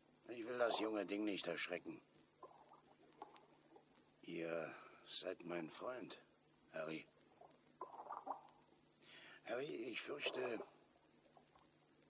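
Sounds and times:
soft low rustle: 0:00.0 - 0:12.0
faint clicks: 0:01.9 - 0:04.3, 0:07.0 - 0:09.4, 0:10.0 - 0:12.0.

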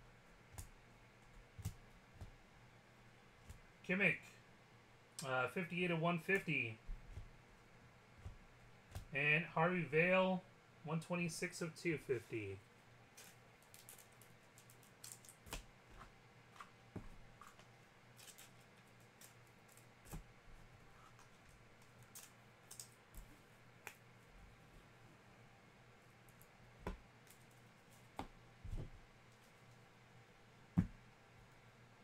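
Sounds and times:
low steady hum: 0:00.0 - 0:32.0
faint clicks and taps: 0:26.3 - 0:29.8.

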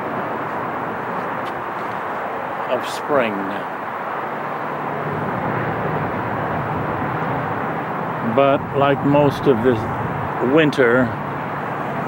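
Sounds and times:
distant freeway traffic hum: 0:00.0 - 0:12.0.

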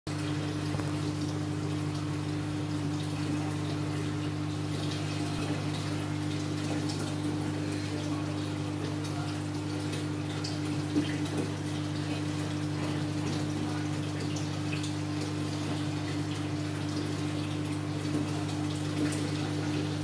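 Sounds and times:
aquarium air stone bubbling: 0:00.1 - 0:20.0.

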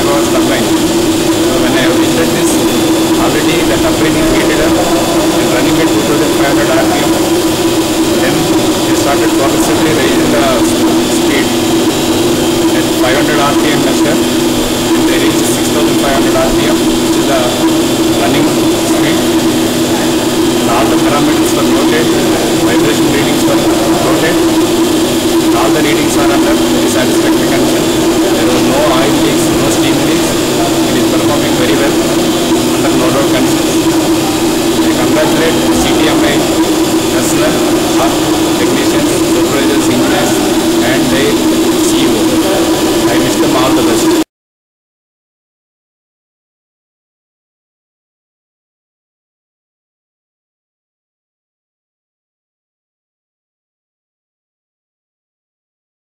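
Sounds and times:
steam turbine droning: 0:00.0 - 0:44.3.

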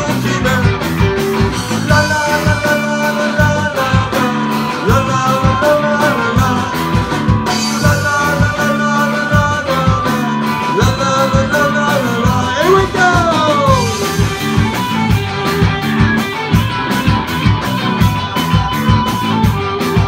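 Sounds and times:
drums keeping steady beat: 0:00.0 - 0:20.0
live ska-rock band playing: 0:00.0 - 0:20.0
sustained lead guitar notes: 0:00.0 - 0:20.0.

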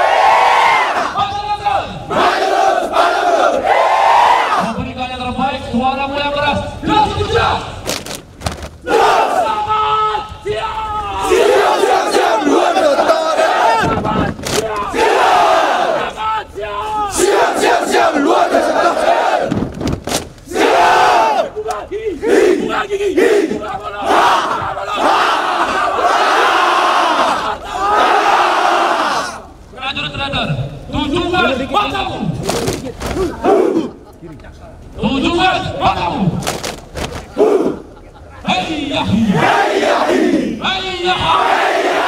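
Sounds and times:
soldiers chanting in unison: 0:02.0 - 0:04.7, 0:08.8 - 0:09.6, 0:11.2 - 0:14.0, 0:14.9 - 0:16.2, 0:17.1 - 0:19.5, 0:20.5 - 0:21.5, 0:22.2 - 0:29.4, 0:39.2 - 0:40.6, 0:41.2 - 0:42.0.

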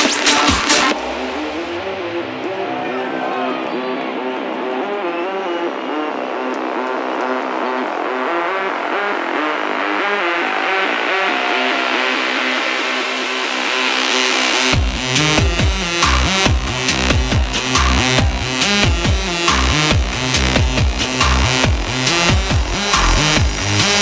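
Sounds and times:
sustained synth chords: 0:00.8 - 0:08.6
stepping synth melody: 0:11.9 - 0:24.0.

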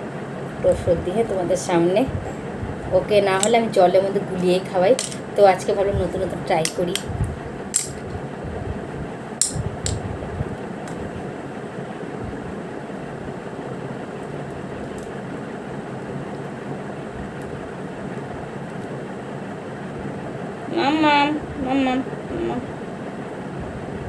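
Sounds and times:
room fan humming: 0:00.0 - 0:24.0.

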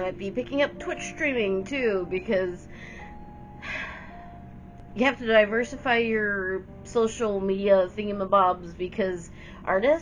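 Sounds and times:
woman breathing in: 0:02.7 - 0:04.4, 0:09.3 - 0:09.6.

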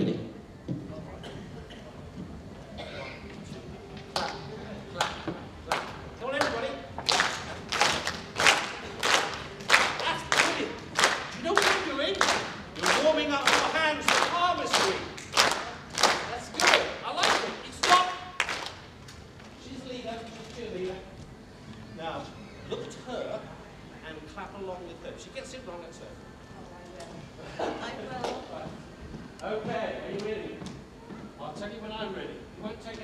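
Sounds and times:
hand claps in steady rhythm: 0:04.1 - 0:04.4, 0:05.0 - 0:18.9.

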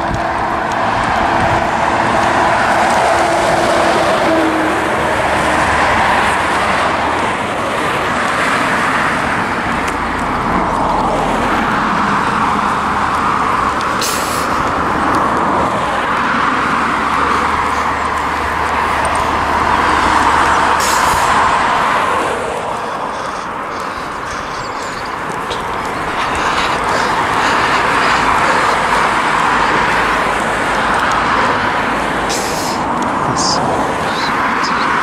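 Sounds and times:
cars driving past: 0:00.0 - 0:35.0.

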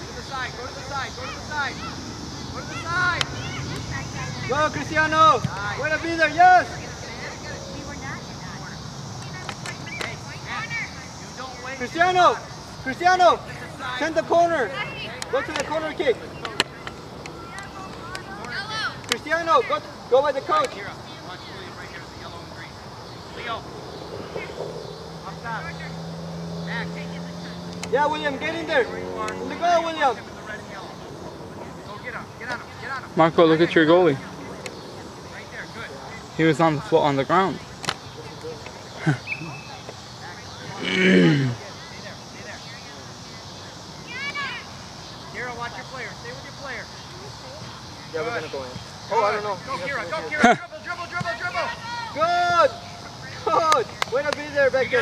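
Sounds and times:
children shouting: 0:00.0 - 0:06.9, 0:44.0 - 0:44.8
adult calling out: 0:00.6 - 0:03.7
low engine hum: 0:22.2 - 0:36.4.

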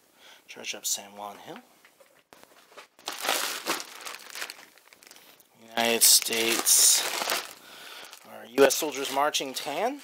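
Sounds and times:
cellophane bags crinkling: 0:02.5 - 0:09.8.

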